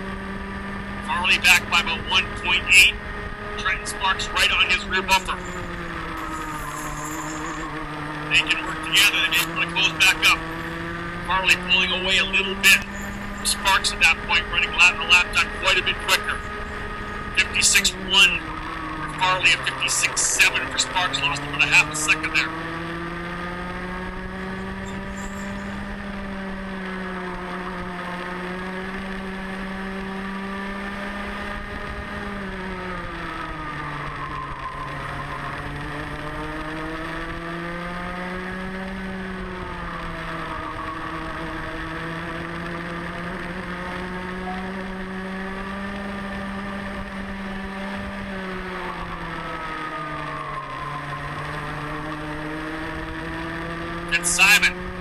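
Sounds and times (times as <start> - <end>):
kart engine at racing speed: 0.0 - 55.0.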